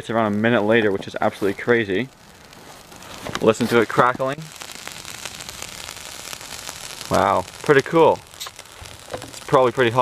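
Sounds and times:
smoke bomb crackling: 0.0s - 10.0s.

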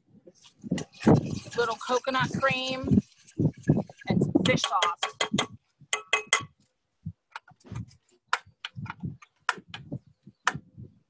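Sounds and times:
metal spoon clinking on jar: 6.0s - 6.6s.

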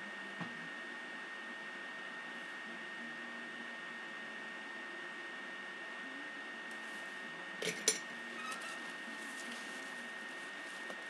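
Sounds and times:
thin high whine: 0.0s - 11.0s.

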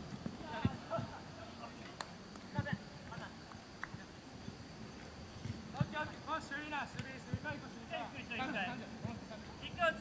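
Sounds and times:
distant players calling out: 0.4s - 4.2s.

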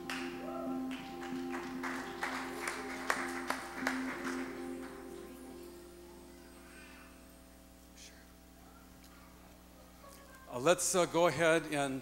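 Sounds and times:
worship band sustained chord: 0.0s - 8.4s.

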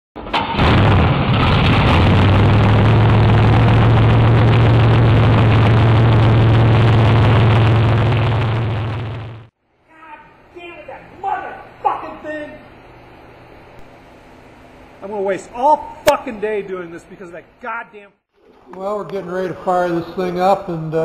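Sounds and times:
loud engine running steadily: 0.6s - 9.5s.

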